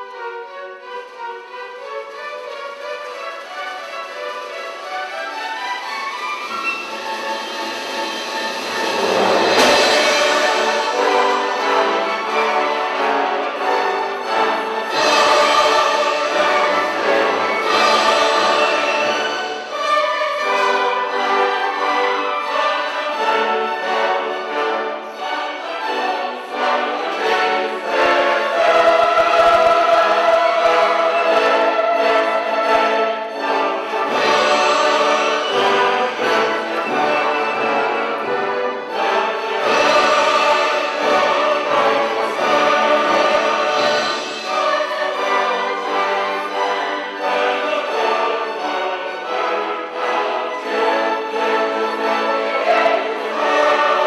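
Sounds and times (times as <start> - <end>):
choir singing: 0.0 - 54.0
symphony orchestra playing: 0.0 - 54.0.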